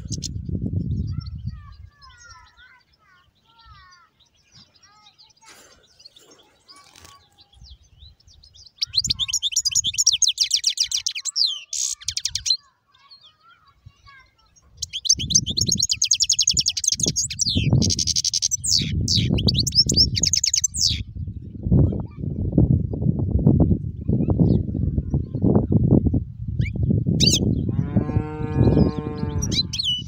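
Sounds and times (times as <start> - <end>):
finch singing high trills: 0.0 - 21.0, 26.6 - 30.0.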